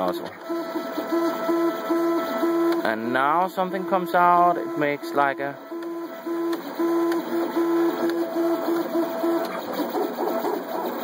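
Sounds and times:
stepper motors whining: 0:00.0 - 0:11.0.

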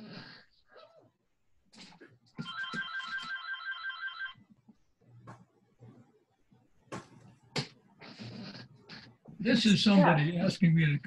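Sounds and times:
telephone ringing: 0:02.4 - 0:04.4.

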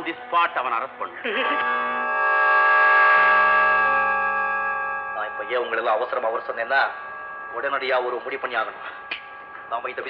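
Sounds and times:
sustained orchestral chord: 0:00.0 - 0:10.0.

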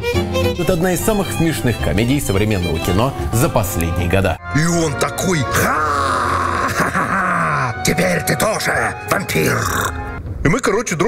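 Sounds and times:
man groaning theatrically: 0:05.4 - 0:07.8.

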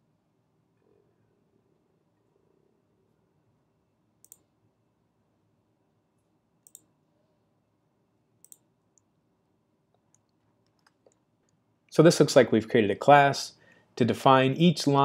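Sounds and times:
computer mouse clicks: 0:04.2 - 0:04.5, 0:06.6 - 0:06.9, 0:08.4 - 0:09.1, 0:09.9 - 0:11.6.

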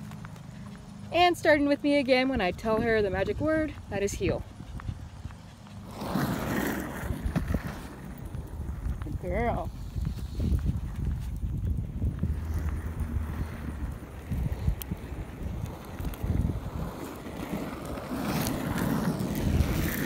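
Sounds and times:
footsteps on asphalt: 0:00.0 - 0:20.0
wind buffeting microphone: 0:01.0 - 0:20.0.

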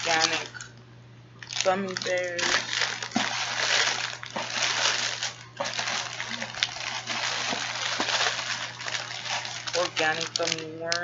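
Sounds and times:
plastic snack bags crinkling: 0:00.0 - 0:00.7, 0:01.4 - 0:11.0.

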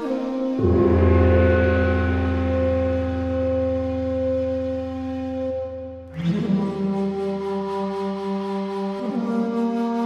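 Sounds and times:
ambient ringing tones over drone: 0:00.6 - 0:06.0.

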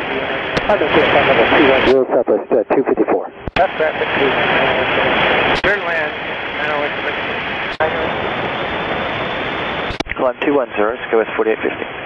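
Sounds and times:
faint radio voice: 0:00.0 - 0:05.0, 0:10.1 - 0:11.9
radio static hiss: 0:00.0 - 0:08.5, 0:09.9 - 0:12.0.

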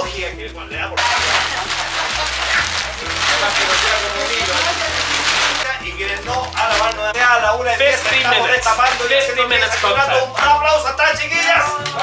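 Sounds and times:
plastic sheeting rustling: 0:01.0 - 0:10.1.

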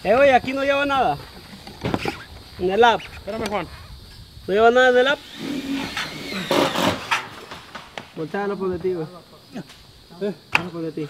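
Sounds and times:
steel roofing panel shifted by hand: 0:05.4 - 0:09.1.

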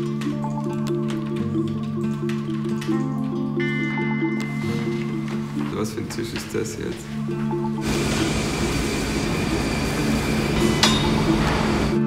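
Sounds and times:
foundry industrial noise: 0:07.7 - 0:12.0
sharp metallic clink: 0:10.6 - 0:11.3.

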